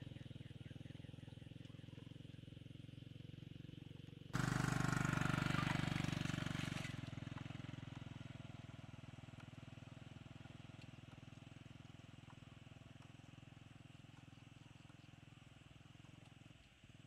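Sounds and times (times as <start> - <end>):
small motorcycle engine running: 0.0 - 17.0.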